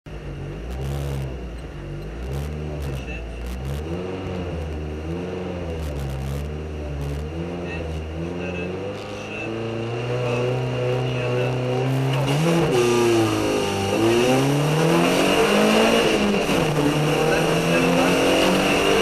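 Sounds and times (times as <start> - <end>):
car engine revving: 0.1 - 19.0.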